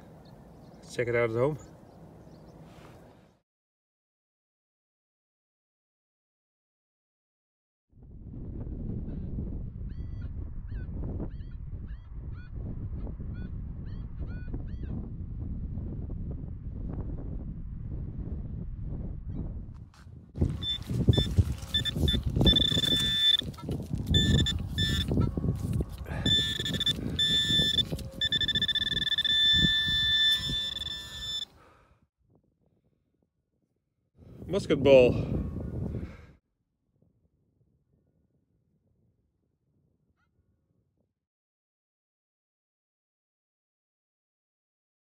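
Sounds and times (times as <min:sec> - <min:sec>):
pinpointer electronic tone: 0:20.6 - 0:23.5, 0:24.1 - 0:25.2, 0:26.2 - 0:31.5
faint chirps: 0:26.1 - 0:31.5.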